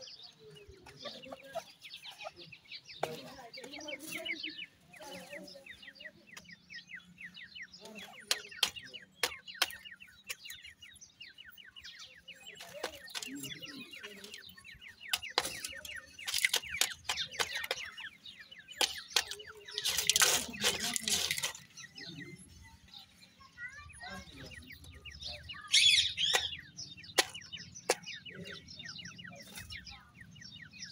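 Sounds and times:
chicks peeping: 0.0 - 30.9
wing-flapping and scuffling: 18.8 - 21.8
sharp taps: 26.2 - 28.2.

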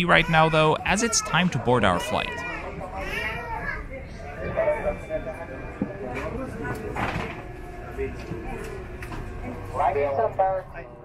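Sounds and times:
passengers chattering: 0.0 - 11.0
child's voice: 3.1 - 4.0.

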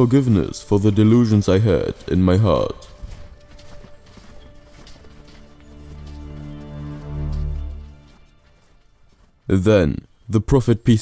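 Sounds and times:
horse hooves clip-clop: 0.0 - 11.0.

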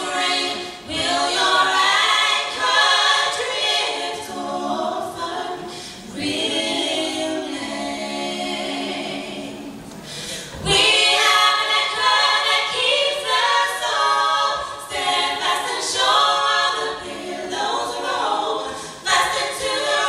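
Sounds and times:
women singing a cappella: 0.0 - 20.0.

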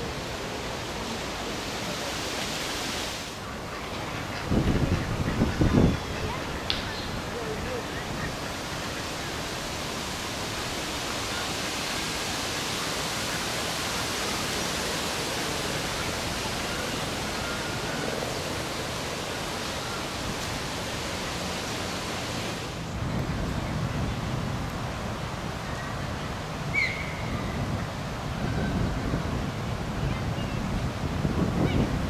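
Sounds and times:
steady rushing hiss: 0.0 - 32.0.

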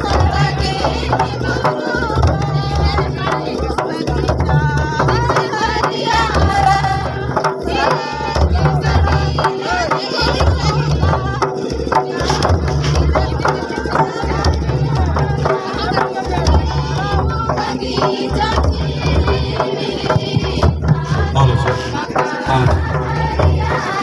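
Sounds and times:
hand-beaten barrel drums: 0.0 - 24.0
voices singing: 0.0 - 24.0.

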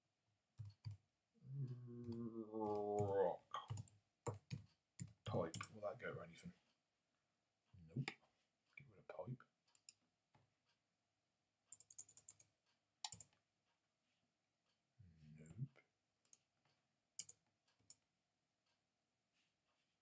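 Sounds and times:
computer keyboard keystrokes: 13.1 - 13.3.

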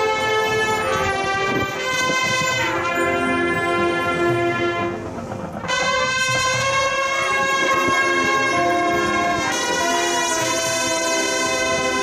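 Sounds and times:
marching band brass chords: 0.0 - 12.0.

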